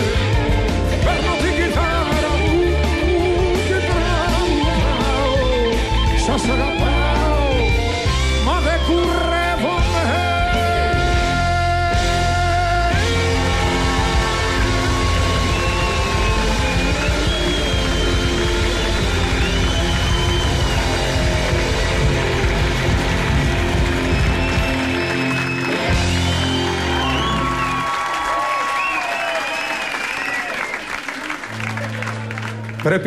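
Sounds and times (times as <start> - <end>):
live rock band playing: 0.0 - 28.1
audience cheering and applauding: 9.7 - 33.0.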